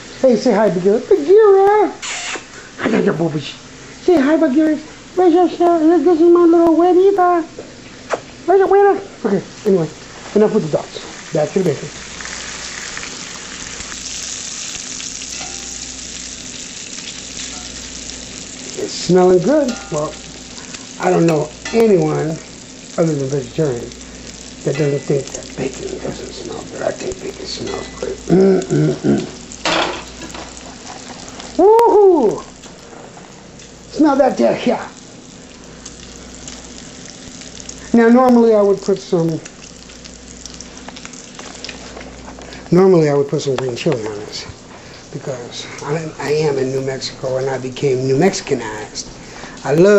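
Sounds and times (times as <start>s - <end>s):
bacon sizzling in skillet: 0.0s - 49.9s.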